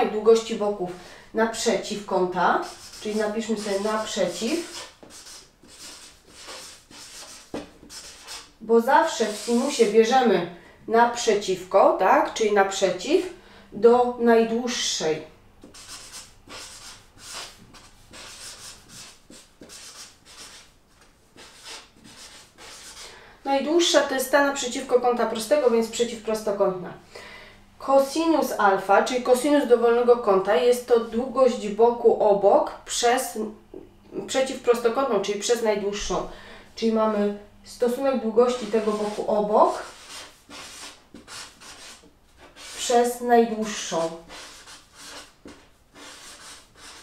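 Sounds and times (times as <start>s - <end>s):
marker writing on paper: 2.5s - 9.9s, 15.6s - 23.0s, 38.5s - 43.0s, 43.9s - 47.0s.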